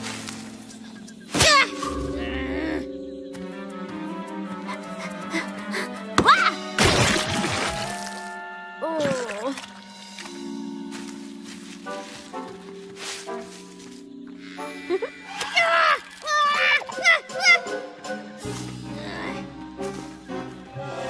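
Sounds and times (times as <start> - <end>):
soft background music: 0.0 - 21.0.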